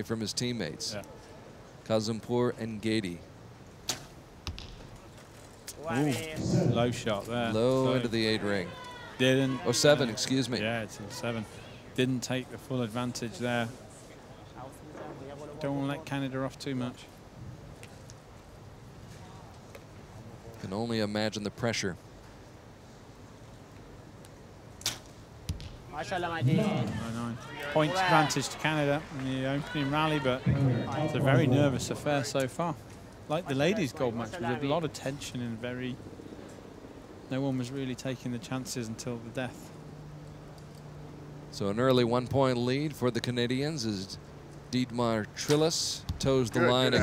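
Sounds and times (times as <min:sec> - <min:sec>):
arrow thumping into target: 0:03.9 - 0:05.0, 0:24.8 - 0:25.8.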